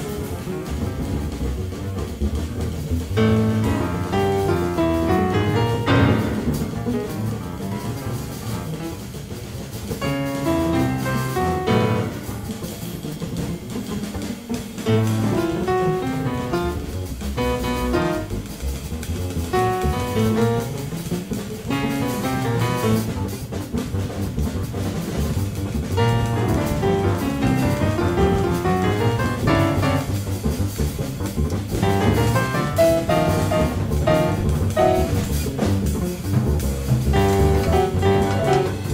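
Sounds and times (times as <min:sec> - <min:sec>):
jazz piano trio playing: 0:00.0 - 0:38.9.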